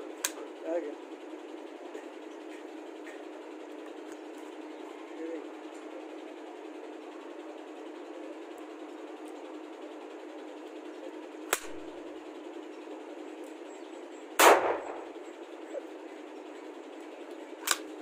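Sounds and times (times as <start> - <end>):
rifle action click: 11.5 - 11.8, 17.6 - 17.9
rifle gunshot bang: 14.4 - 15.1.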